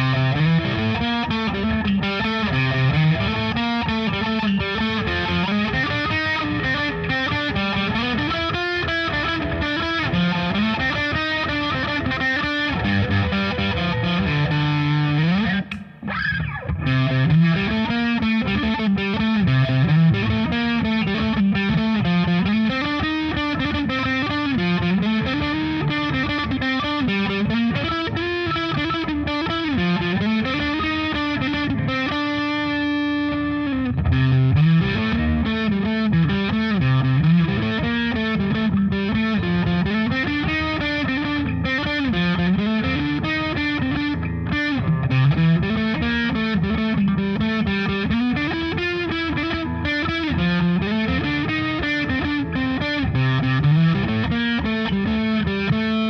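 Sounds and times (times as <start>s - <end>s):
overdriven electric guitar riffs: 0.0s - 56.0s.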